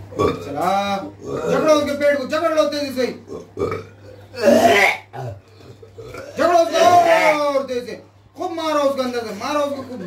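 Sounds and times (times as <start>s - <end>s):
man belching and retching: 0.1s - 1.8s, 3.2s - 6.5s.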